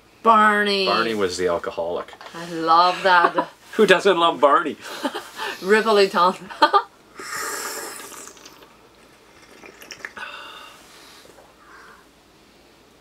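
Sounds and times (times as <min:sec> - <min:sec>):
tea slurping: 0:07.2 - 0:11.4.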